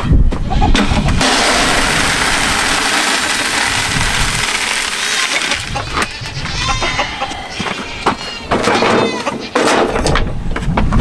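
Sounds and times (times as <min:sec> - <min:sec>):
feed pouring into plastic bucket: 0:01.1 - 0:06.0.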